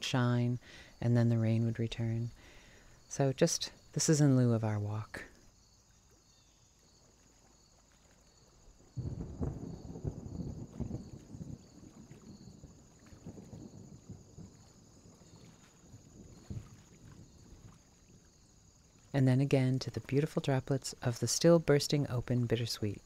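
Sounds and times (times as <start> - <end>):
wind gusts on microphone: 8.8 - 18.7.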